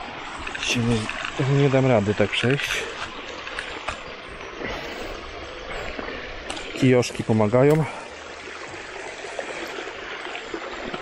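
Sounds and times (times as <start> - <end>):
stream rushing over rocks: 0.0 - 11.0.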